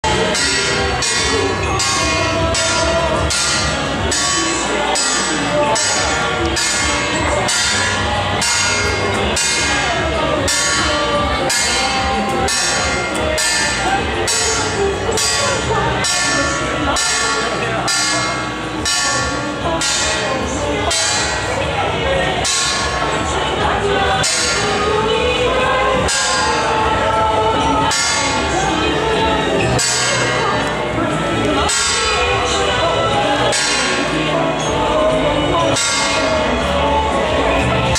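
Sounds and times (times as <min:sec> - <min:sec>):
hand cymbals clashing: 0:00.1 - 0:34.8.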